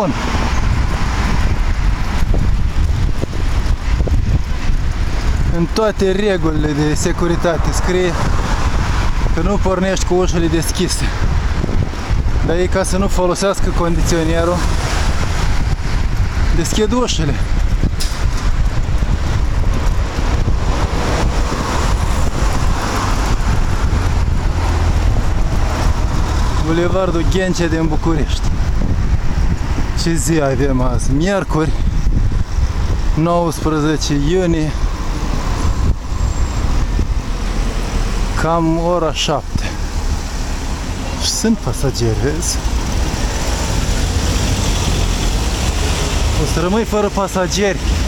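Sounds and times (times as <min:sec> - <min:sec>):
vehicle road noise rumble: 0:00.0 - 0:48.0
wind buffeting microphone: 0:00.0 - 0:48.0.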